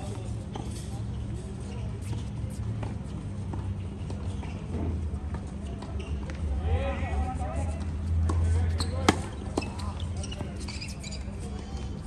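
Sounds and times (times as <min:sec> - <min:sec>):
tennis ball bouncing: 0:09.0 - 0:09.8.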